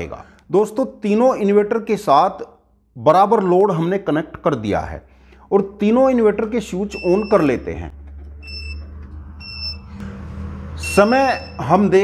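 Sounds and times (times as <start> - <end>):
high-pitched electronic beeps: 6.9 - 7.7, 8.4 - 10.0, 10.8 - 12.0.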